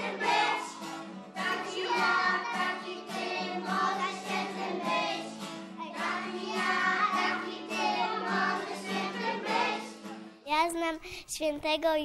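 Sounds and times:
children singing in chorus: 0:00.0 - 0:10.0.

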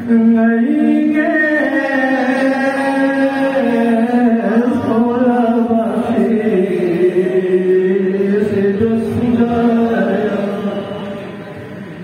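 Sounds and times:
person chanting devotional song: 0:00.0 - 0:12.0.

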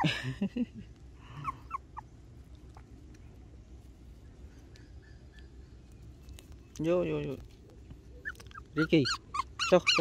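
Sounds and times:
puppy whimpering squeaks: 0:08.1 - 0:10.0.

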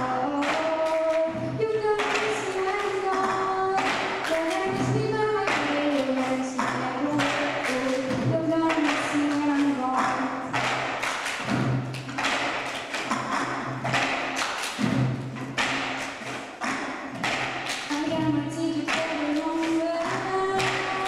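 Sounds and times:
girl singing: 0:00.0 - 0:10.4, 0:18.0 - 0:21.0
plastic cups clapped on tabletops: 0:00.0 - 0:21.0.

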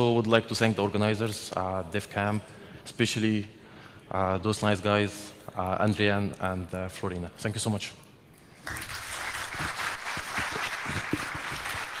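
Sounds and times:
audience applause: 0:08.6 - 0:12.0.

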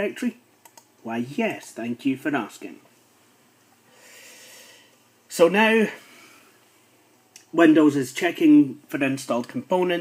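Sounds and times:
faint breath: 0:03.9 - 0:05.0.

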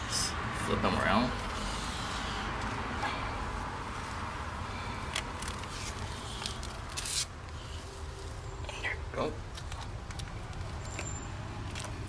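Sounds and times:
hand scraping tortoise shell: 0:05.0 - 0:08.4.

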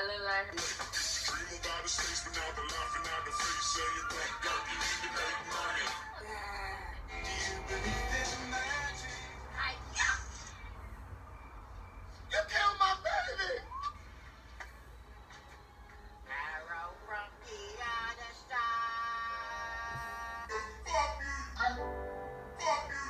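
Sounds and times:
music from laptop speaker: 0:00.0 - 0:06.2, 0:07.1 - 0:09.6, 0:13.8 - 0:20.6
loud excited voices: 0:01.6 - 0:10.5.

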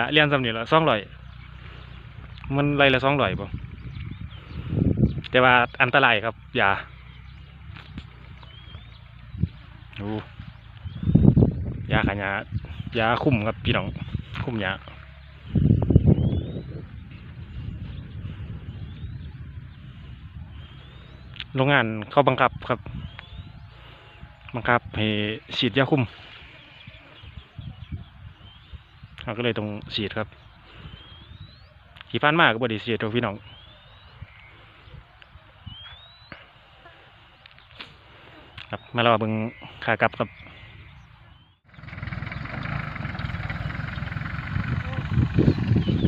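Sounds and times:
wind buffeting microphone: 0:00.0 - 0:32.2, 0:33.2 - 0:36.2, 0:40.3 - 0:46.0
rising whistled bird call: 0:08.4 - 0:09.5, 0:10.6 - 0:11.6, 0:15.0 - 0:17.0, 0:18.7 - 0:19.5, 0:22.5 - 0:24.4, 0:26.4 - 0:29.1, 0:30.4 - 0:32.2, 0:33.4 - 0:38.0, 0:38.6 - 0:46.0
low rumble: 0:41.6 - 0:46.0.

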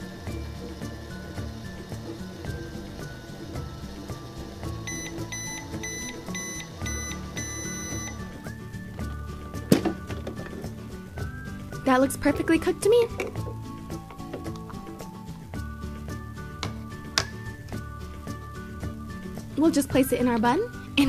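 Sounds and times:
background music: 0:00.0 - 0:21.0
toy microwave beeping: 0:00.1 - 0:08.5.

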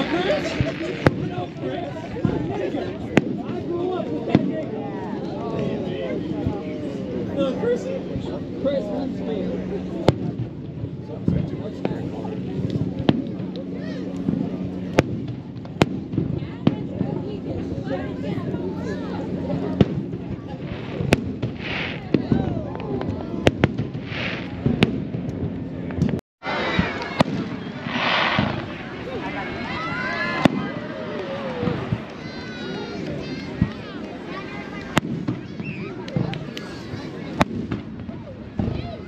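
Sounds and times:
crowd chatter: 0:00.0 - 0:39.0
firework shells bursting: 0:26.8 - 0:29.0.

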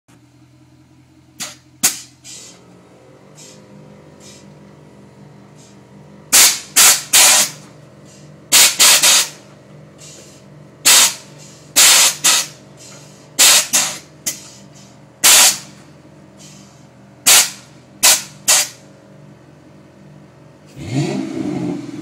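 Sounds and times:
air suspension hissing: 0:01.4 - 0:02.7, 0:03.3 - 0:04.6, 0:05.5 - 0:18.9.

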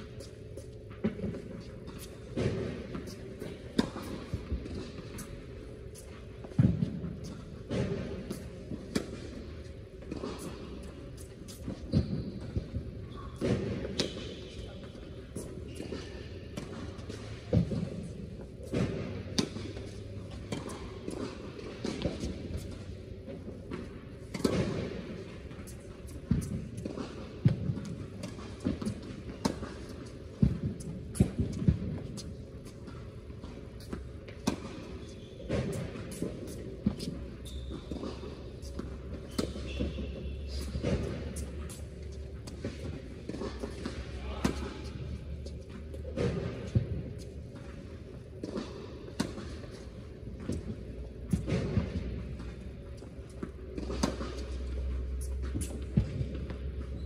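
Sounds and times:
tennis balls struck by racquets: 0:00.0 - 0:56.9
tennis balls bouncing on hard court: 0:00.0 - 0:57.0.

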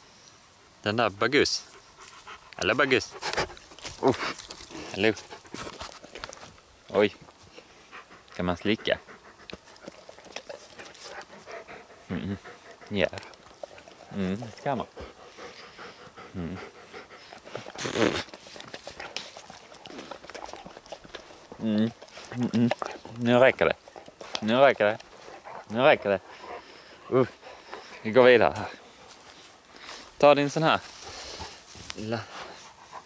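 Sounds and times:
animal licking and sniffing: 0:01.6 - 0:06.7, 0:07.3 - 0:33.0.

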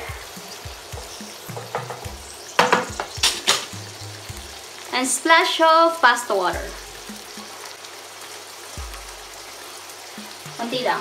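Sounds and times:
sauce sizzling in a frying pan: 0:00.0 - 0:11.0.

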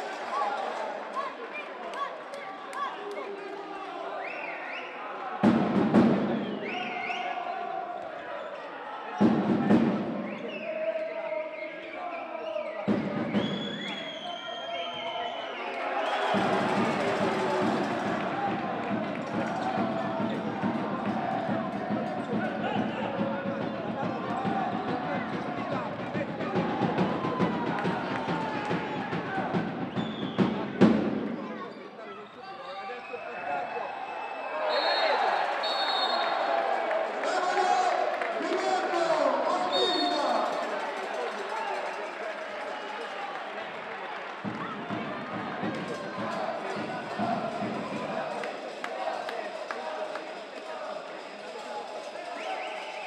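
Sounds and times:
crowd noise: 0:00.0 - 0:53.0
drumming from stands: 0:05.4 - 0:07.0, 0:09.2 - 0:10.5, 0:12.8 - 0:13.8, 0:16.1 - 0:31.5, 0:44.3 - 0:49.1.

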